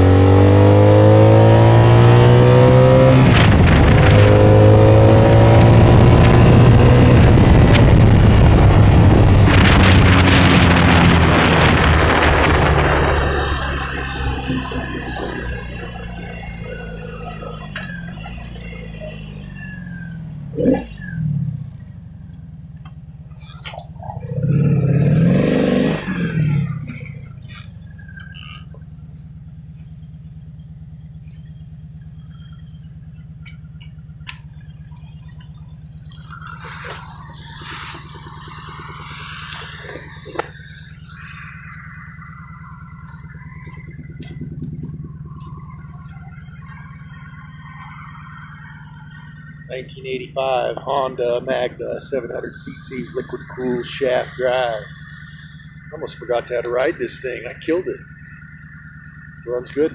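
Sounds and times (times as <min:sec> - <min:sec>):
motorcycle engine revving and idling: 0:00.0 - 0:59.9
sharp clicks: 0:35.8 - 0:46.8.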